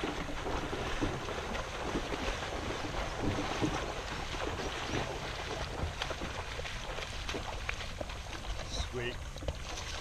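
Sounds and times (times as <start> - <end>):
water lapping along canoe: 0.0 - 10.0.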